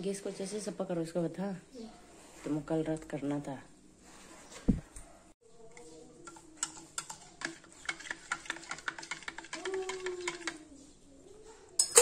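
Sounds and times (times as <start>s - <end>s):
spoon clinking against glass: 11.8s - 12.0s.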